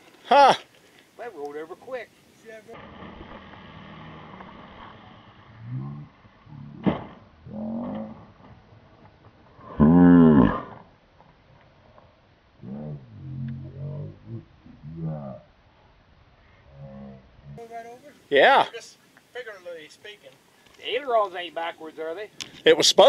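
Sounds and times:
men groaning and exclaiming: 0.2 - 0.7, 9.8 - 10.6
sharp knock: 6.8 - 7.2.

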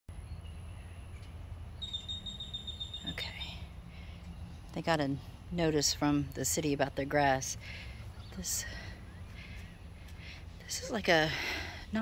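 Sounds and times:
bird trilling: 1.8 - 3.4.

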